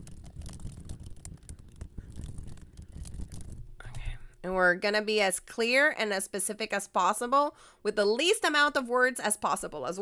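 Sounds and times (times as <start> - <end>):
rapid typing on keyboard: 0.0 - 4.1.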